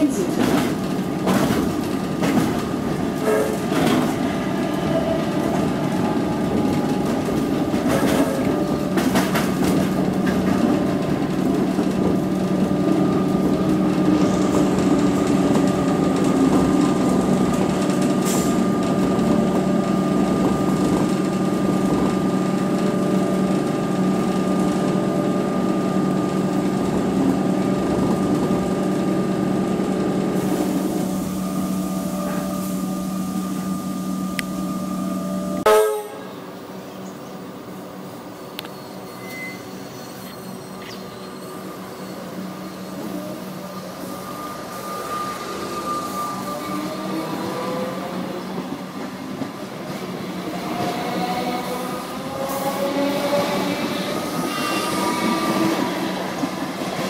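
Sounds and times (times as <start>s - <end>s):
train rumble: 0.0s - 57.0s
wheels clicking over rail joints: 5.0s - 19.6s.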